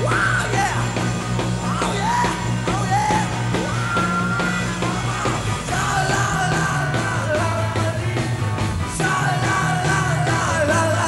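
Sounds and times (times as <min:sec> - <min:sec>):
bass guitar: 0:00.0 - 0:11.0
electric guitars: 0:00.0 - 0:11.0
steady drum beat: 0:00.0 - 0:11.0
voices singing loudly: 0:00.0 - 0:11.0.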